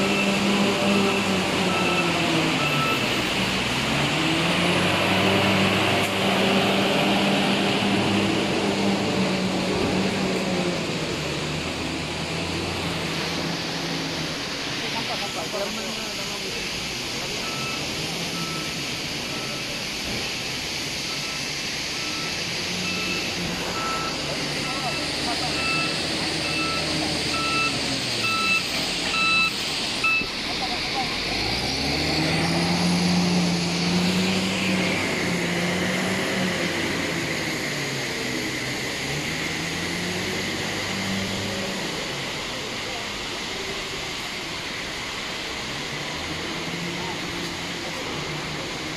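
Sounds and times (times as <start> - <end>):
reversing alarm beeps: 0.0 - 3.2, 17.4 - 19.8, 21.0 - 30.4
vehicle engine revving: 0.0 - 48.9.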